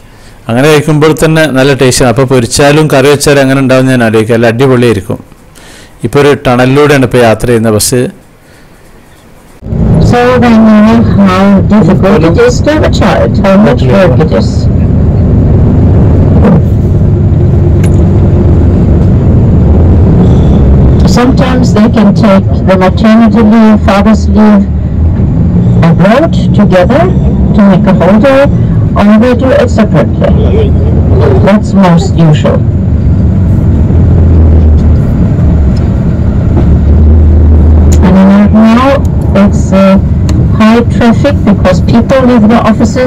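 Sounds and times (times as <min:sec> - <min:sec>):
vehicle engine rumble: 0:09.2 - 0:43.0
road noise: 0:09.3 - 0:43.0.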